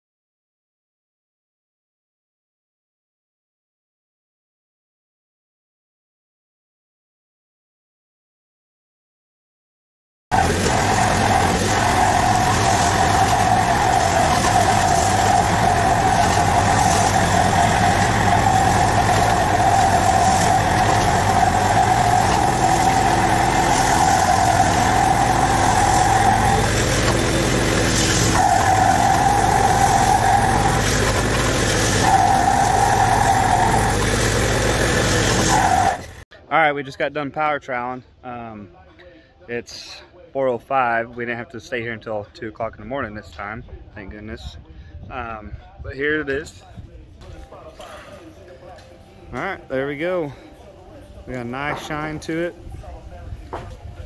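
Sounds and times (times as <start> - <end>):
small gasoline engine running: 10.3 - 36.2
steady whining tone: 10.3 - 36.2.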